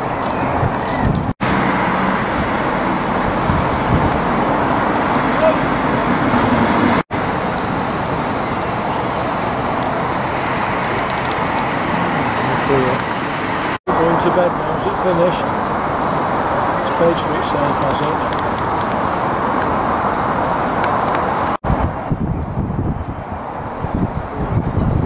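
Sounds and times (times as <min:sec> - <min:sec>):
motor and traffic rumble: 0:00.0 - 0:25.0.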